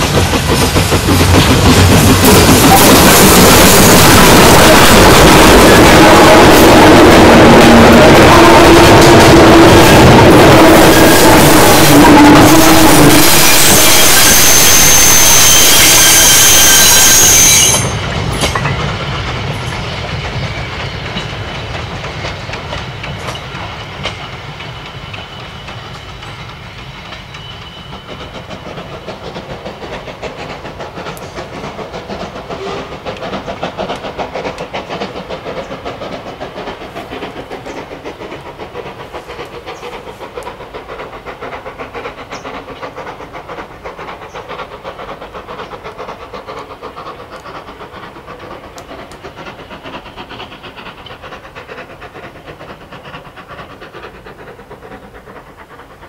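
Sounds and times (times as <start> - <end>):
steam engine working hard: 0.0 - 56.0
steam locomotive whistle: 2.3 - 18.5, 32.5 - 33.0.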